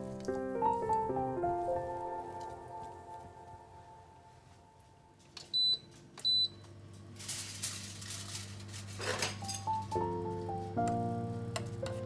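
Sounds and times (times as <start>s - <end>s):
low hum from hob: 2.9s - 12.0s.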